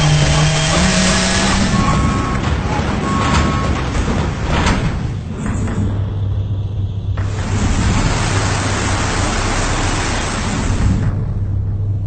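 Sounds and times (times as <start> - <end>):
heavy machinery droning: 0.0 - 12.0.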